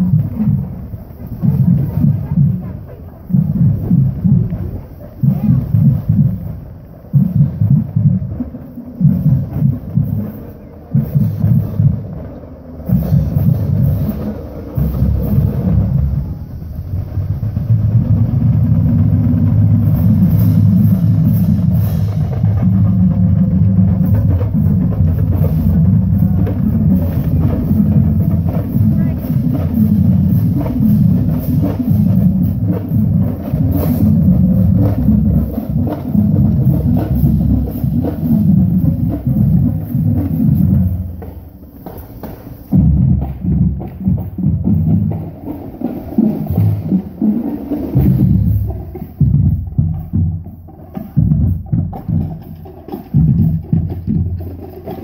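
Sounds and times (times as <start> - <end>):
snare and bass drums cadence: 0.0 - 55.0.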